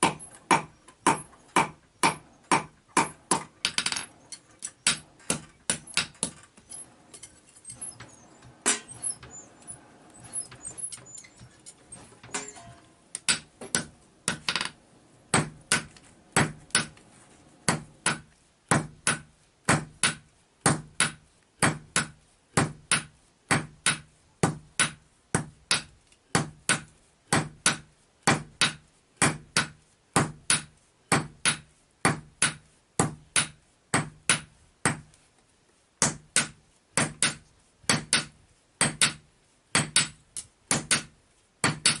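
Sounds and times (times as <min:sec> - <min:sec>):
hammer striking metal on anvil: 0:00.0 - 0:09.5, 0:10.2 - 0:14.7.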